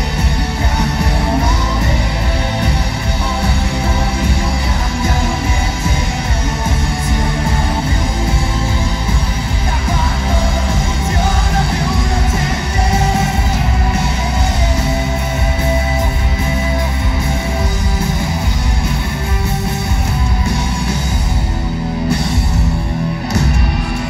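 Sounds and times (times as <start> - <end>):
distorted electric guitars: 0.0 - 24.0
live rock band playing: 0.0 - 24.0.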